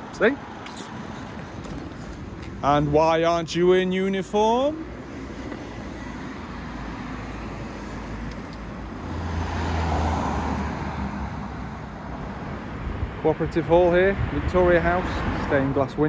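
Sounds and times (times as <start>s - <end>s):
street traffic noise: 0.0s - 16.0s
motor vehicle passing by: 9.0s - 11.6s.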